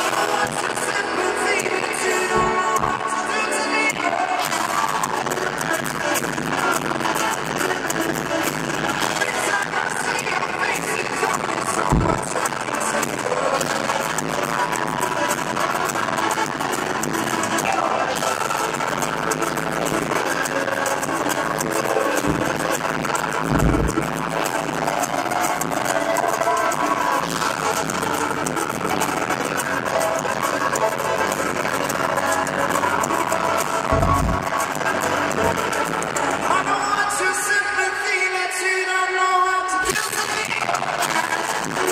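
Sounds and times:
deep thuds: 2.3s - 3.1s, 11.9s - 12.4s, 23.4s - 24.1s, 33.9s - 34.5s.

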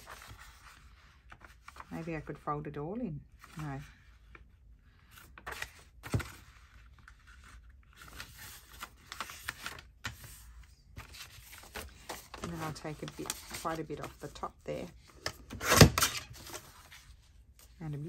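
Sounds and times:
paper pages rustling: 0.0s - 2.4s, 3.4s - 17.8s.

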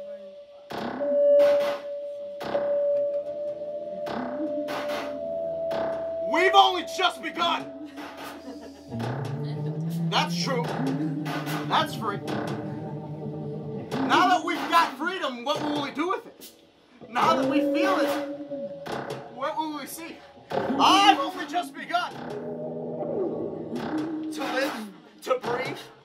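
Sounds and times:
keyboard: 0.0s - 26.0s
person singing wordless phrases: 9.4s - 13.4s.

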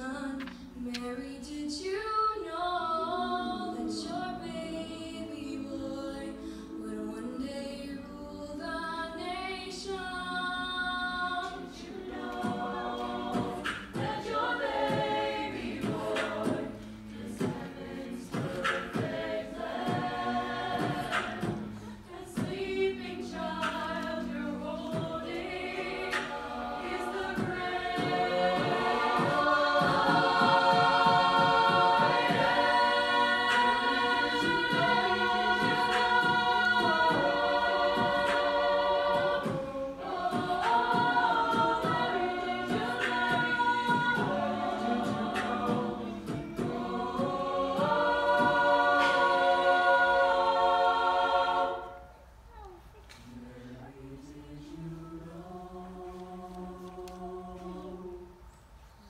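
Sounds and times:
choir singing sustained chords: 1.9s - 52.4s, 53.4s - 59.0s.

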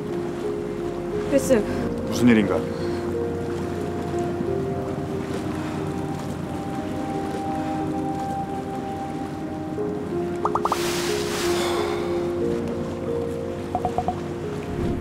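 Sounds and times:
soft background score: 0.0s - 15.0s.

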